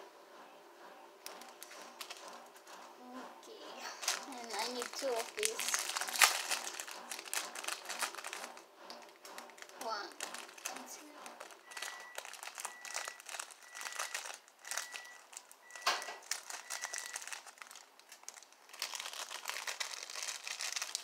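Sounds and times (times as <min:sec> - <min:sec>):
plastic bag crinkling: 0:01.3 - 0:02.4, 0:03.9 - 0:21.0.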